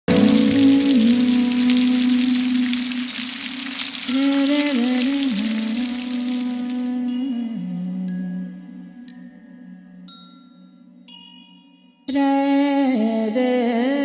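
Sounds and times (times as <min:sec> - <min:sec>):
rain hiss: 0:00.1 - 0:06.9
slow low melody: 0:00.1 - 0:09.7.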